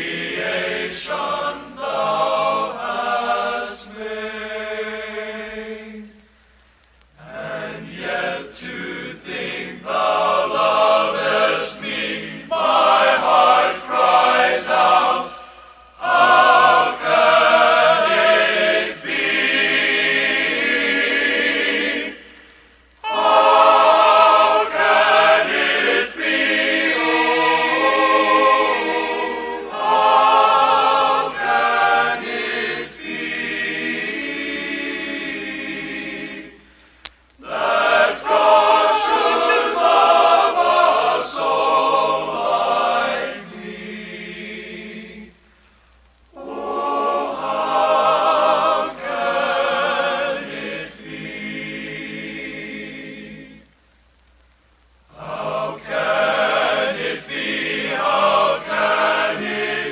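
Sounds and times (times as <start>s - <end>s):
men's choir singing: 0.0s - 6.2s, 7.2s - 22.4s, 23.0s - 36.6s, 37.4s - 45.4s, 46.3s - 53.7s, 55.1s - 59.9s.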